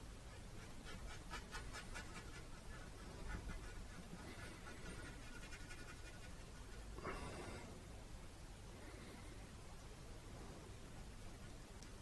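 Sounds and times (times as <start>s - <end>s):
paintbrush dabbing on canvas: 0.3s - 7.0s.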